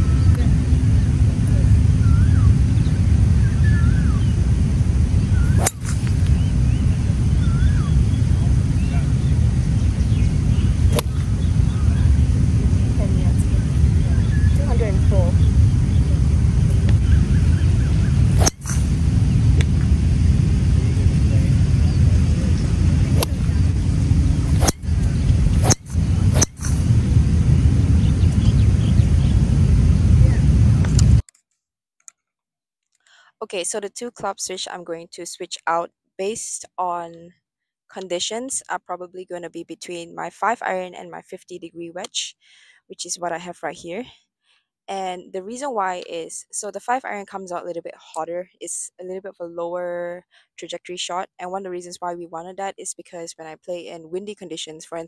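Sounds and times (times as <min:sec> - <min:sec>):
low outdoor rumble: 0:00.0 - 0:31.2
golf shots clicking: 0:05.6 - 0:06.2, 0:18.4 - 0:18.8.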